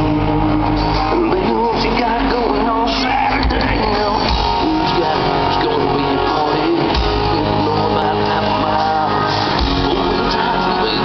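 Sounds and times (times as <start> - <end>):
live country-rock band: 0.0 - 11.0.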